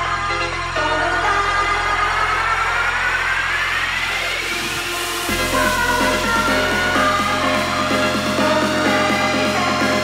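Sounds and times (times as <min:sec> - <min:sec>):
low bass: 0:00.0 - 0:10.0
whooshing riser sweep: 0:02.7 - 0:09.4.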